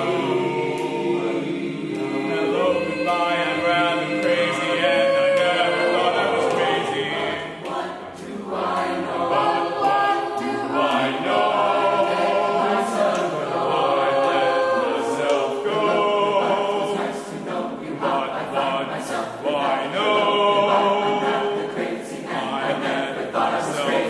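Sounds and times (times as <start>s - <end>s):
choir singing a cappella: 0.0s - 24.0s.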